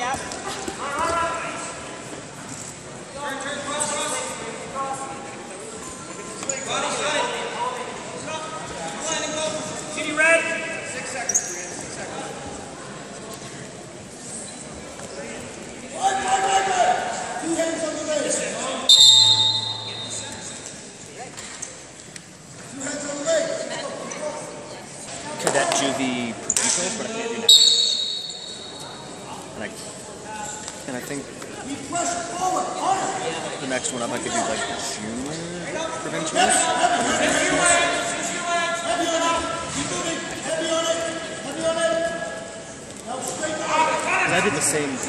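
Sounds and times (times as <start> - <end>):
referee's whistle blast: 18.9 - 20.6, 27.5 - 28.8.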